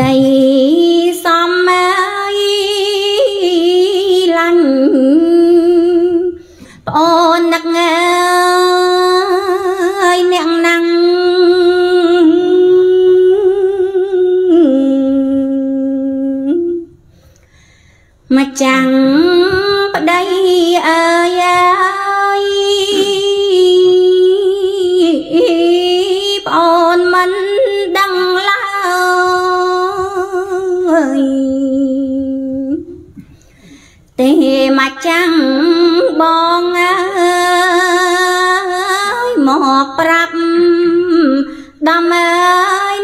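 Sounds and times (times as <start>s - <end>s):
woman singing with vibrato: 0.0s - 17.0s, 18.3s - 33.2s, 34.2s - 43.0s.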